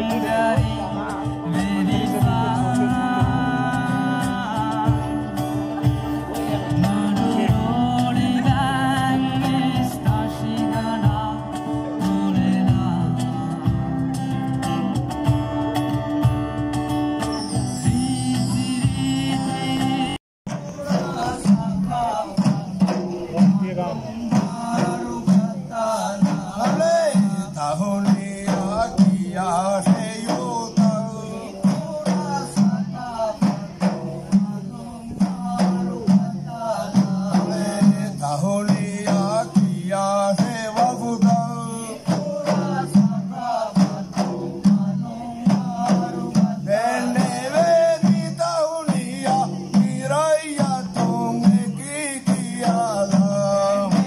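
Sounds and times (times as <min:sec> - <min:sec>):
men singing together: 0:00.0 - 0:14.9, 0:17.6 - 0:54.0
frame drums beating: 0:00.0 - 0:54.0.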